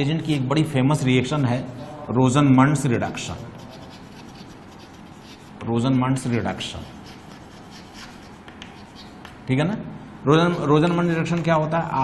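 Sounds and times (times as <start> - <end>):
chalk scratching on chalkboard: 1.3 - 2.0, 3.0 - 9.5, 10.4 - 11.0.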